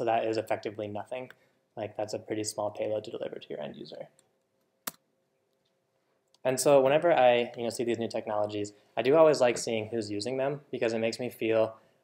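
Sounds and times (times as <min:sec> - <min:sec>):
sharp click: 0:04.8 - 0:05.1.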